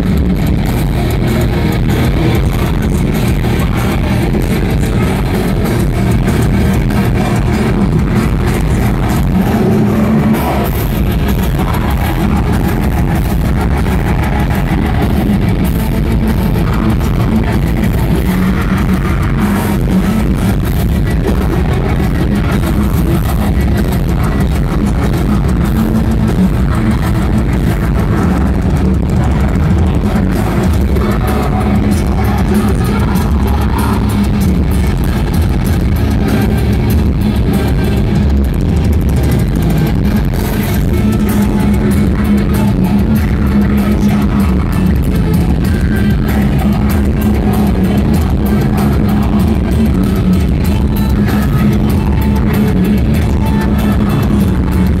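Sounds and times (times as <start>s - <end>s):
bass guitar: 0.0s - 55.0s
distorted electric guitars: 0.0s - 55.0s
drums: 0.0s - 55.0s.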